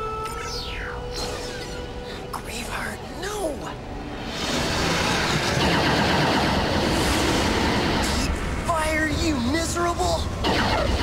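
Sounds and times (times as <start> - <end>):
music: 0.0 - 6.1
spacecraft engine rushing: 4.1 - 8.8.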